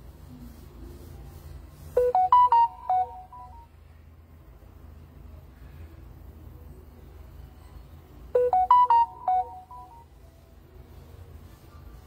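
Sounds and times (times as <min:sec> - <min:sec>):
electronic alert jingle: 0:02.0 - 0:03.7, 0:08.4 - 0:10.1.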